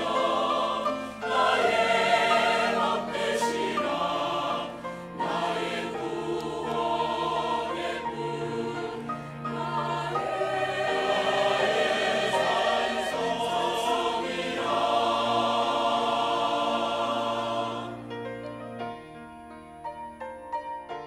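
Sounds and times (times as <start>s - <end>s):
mixed choir singing: 0.0s - 18.2s
organ accompaniment: 0.0s - 20.3s.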